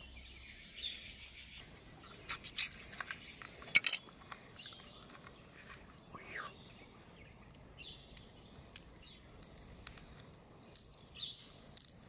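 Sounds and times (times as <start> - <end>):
bird chirp: 0.0 - 12.0
pearls clicking together: 10.7 - 11.0, 11.7 - 12.0.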